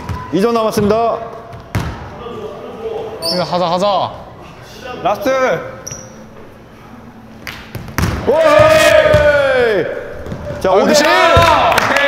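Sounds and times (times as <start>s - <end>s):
low hall noise: 0.0s - 12.0s
basketball bouncing on gym floor: 1.5s - 2.1s, 7.7s - 9.4s.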